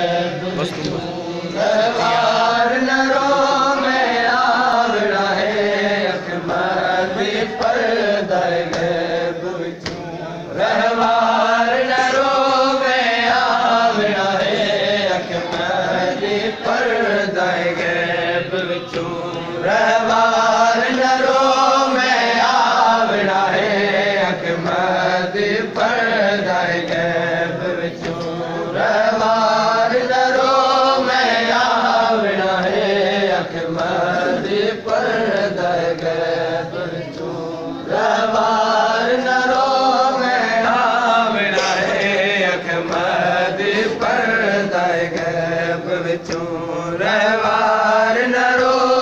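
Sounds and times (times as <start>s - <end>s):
men chanting a lament: 0.0s - 49.0s.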